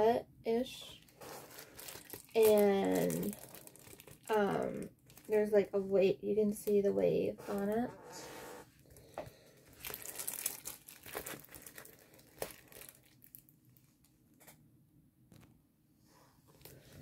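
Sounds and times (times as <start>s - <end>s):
plastic crinkling and rustling: 0.8s - 5.8s, 7.4s - 7.9s, 9.6s - 14.5s.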